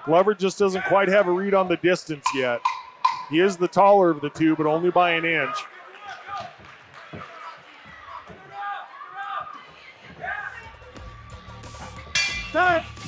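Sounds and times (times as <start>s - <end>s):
people shouting: 0.7s - 1.7s, 4.2s - 13.0s
low background music: 10.6s - 13.0s.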